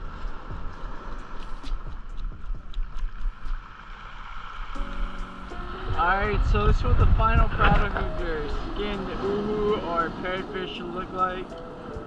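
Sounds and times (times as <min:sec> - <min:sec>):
steady low rumble: 0:00.0 - 0:11.6.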